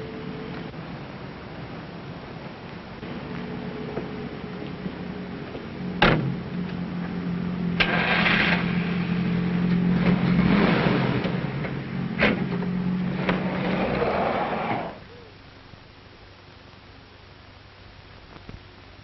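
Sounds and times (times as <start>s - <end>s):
vehicle engine running: 3.0s - 15.0s.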